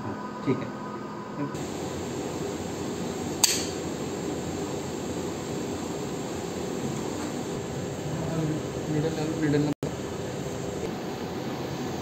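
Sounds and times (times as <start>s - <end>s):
mechanical hum of equipment: 0.0s - 12.0s
biopsy needle firing click: 3.4s - 3.8s.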